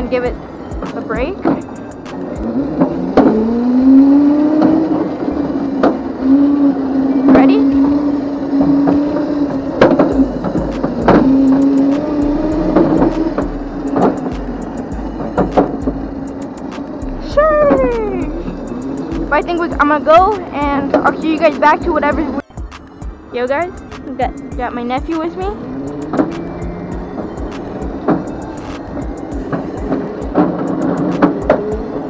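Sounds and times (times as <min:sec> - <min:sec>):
electric kart motor whining: 0:00.0 - 0:22.4, 0:23.8 - 0:32.0
knocks and clicks: 0:00.8 - 0:03.5, 0:05.8 - 0:06.1, 0:08.6 - 0:22.9, 0:25.0 - 0:32.0
kart sliding squeal: 0:25.6 - 0:32.0.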